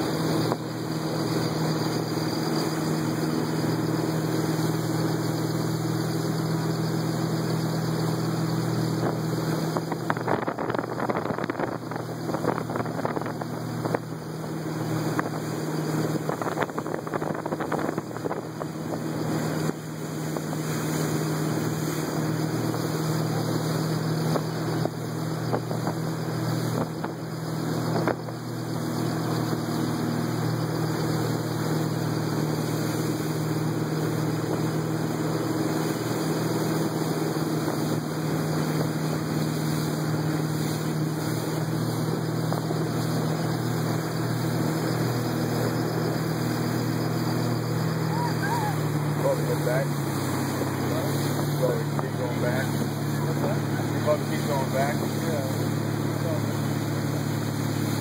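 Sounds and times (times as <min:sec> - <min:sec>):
motorboat engine running: 0:00.0 - 0:58.0
rushing wake and spray: 0:00.0 - 0:58.0.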